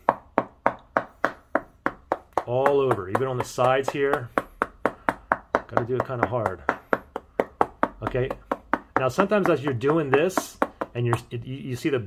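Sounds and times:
fingertips tapping touchscreen: 0.0s - 11.6s.

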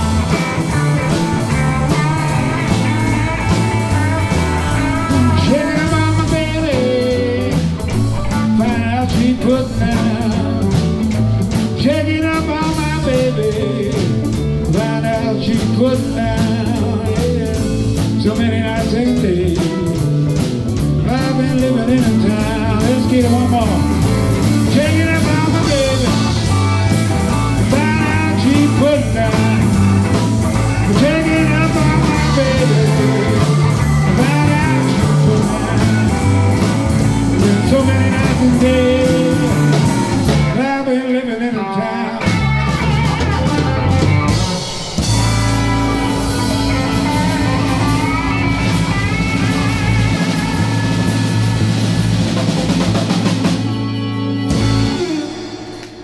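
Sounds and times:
live blues band playing: 0.0s - 56.0s
long held chords: 42.0s - 56.0s.

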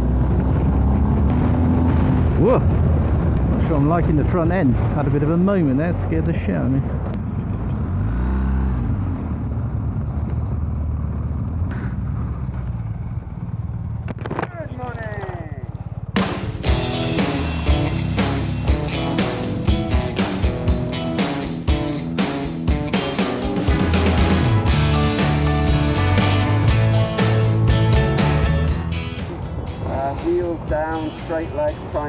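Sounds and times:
wind noise: 0.0s - 5.4s
motorcycle engine rumble: 0.0s - 32.0s
rock music with strong beat: 16.2s - 32.0s.

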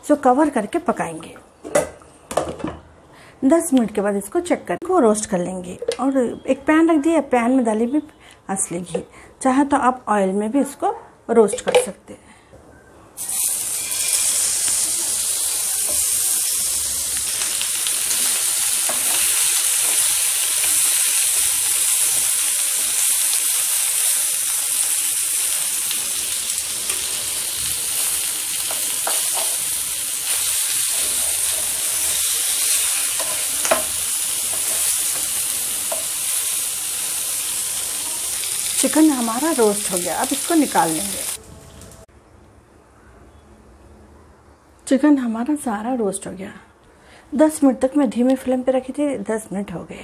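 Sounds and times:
chicken sizzling in a pan: 13.2s - 41.4s.

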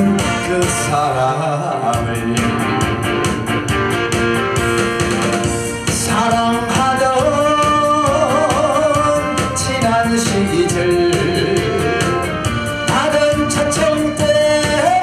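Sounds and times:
male singer: 0.0s - 3.3s, 5.2s - 15.0s
recorded backing track: 0.0s - 15.0s.

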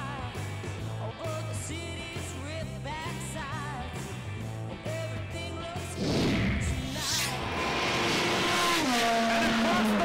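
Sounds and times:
race car engine passing by: 6.0s - 10.0s.

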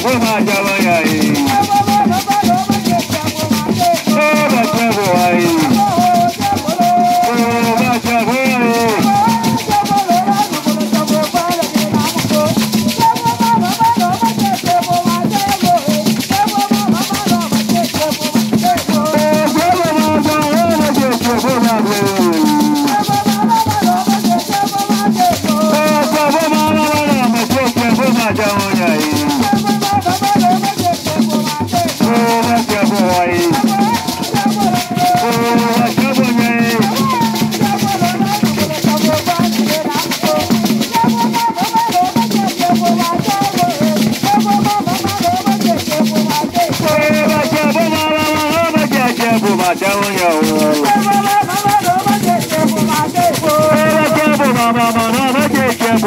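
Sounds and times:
group of voices singing: 0.0s - 56.0s
hand drums beaten: 0.0s - 56.0s
shaken rattles: 0.0s - 56.0s.

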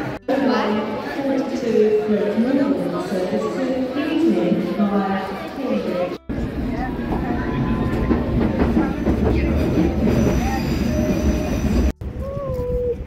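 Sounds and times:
train rumbling and rattling on track: 6.3s - 13.0s.

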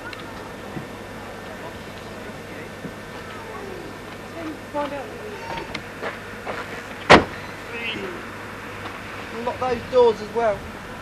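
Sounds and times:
faint voices: 0.0s - 11.0s
car door slamming: 5.5s - 7.6s.

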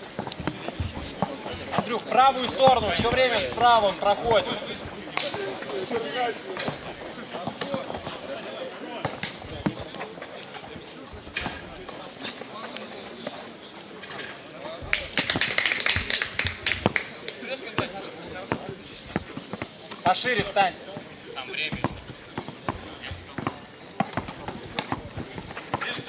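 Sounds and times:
basketball bouncing: 17.8s - 19.8s, 21.7s - 26.0s.

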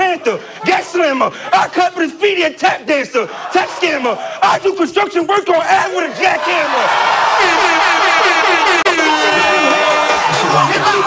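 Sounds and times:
crowd shouting: 3.2s - 11.0s.

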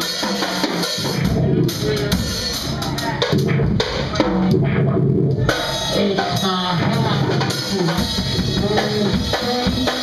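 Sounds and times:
drum kit: 0.0s - 10.0s.

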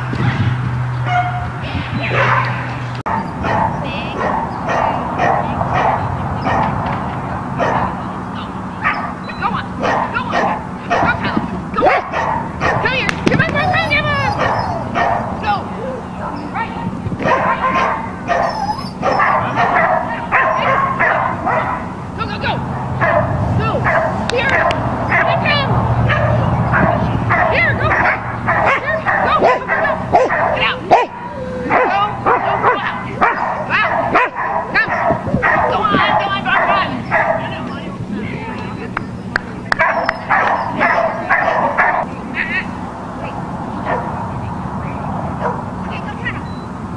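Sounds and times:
dogs barking and yipping: 0.9s - 42.5s, 43.2s - 44.3s, 45.1s - 46.8s
dogs whining: 3.1s - 6.8s, 7.6s - 21.9s, 23.0s - 42.1s.

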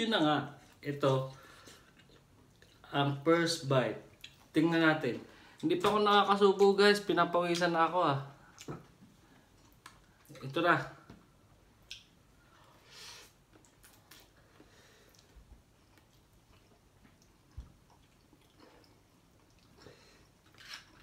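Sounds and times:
chewing noodles: 1.5s - 2.9s, 13.4s - 21.0s.

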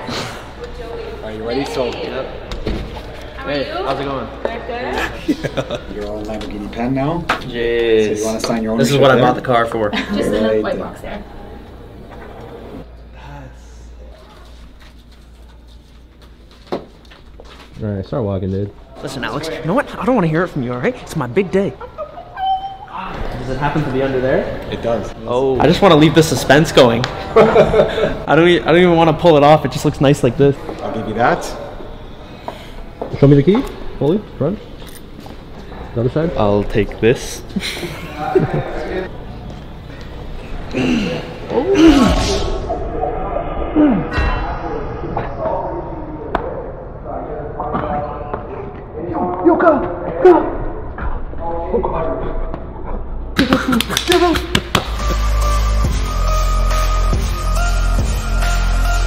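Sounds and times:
background music: 54.6s - 59.0s.

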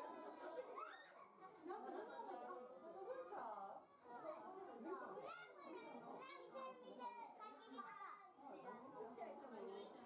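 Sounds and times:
children talking: 0.0s - 10.0s.

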